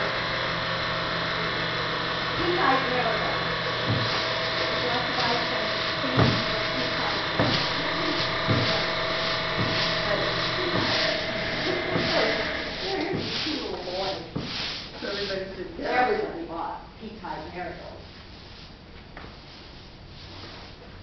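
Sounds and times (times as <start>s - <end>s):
steady machine hum: 0.0s - 21.0s
low voices: 1.1s - 14.4s.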